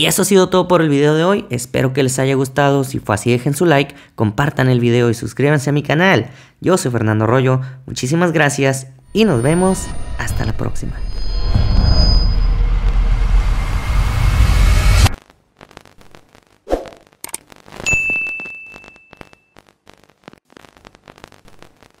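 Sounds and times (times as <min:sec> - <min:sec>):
loud bassy whoosh: 0:09.1 - 0:15.2
glitchy clicks: 0:13.8 - 0:20.4
notification bell ding: 0:17.9 - 0:19.2.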